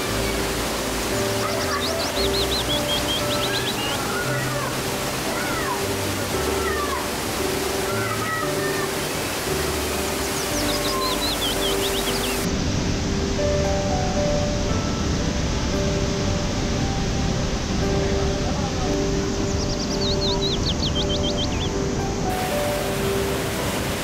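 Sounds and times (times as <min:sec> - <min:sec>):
background music of held notes: 0:00.0 - 0:24.0
waterfall rushing: 0:00.0 - 0:24.0
bird chirps: 0:01.4 - 0:04.2, 0:09.8 - 0:12.5, 0:19.5 - 0:21.8.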